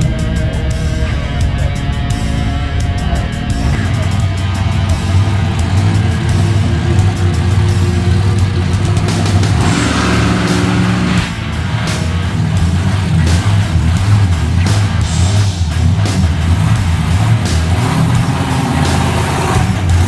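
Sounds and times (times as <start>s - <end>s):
monster truck engine running: 0.0s - 20.0s
rock music: 0.0s - 20.0s.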